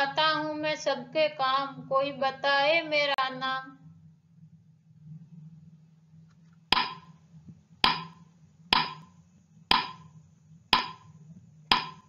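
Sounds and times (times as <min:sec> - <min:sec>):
timer ticking clicks: 0:06.7 - 0:07.2, 0:07.8 - 0:12.0.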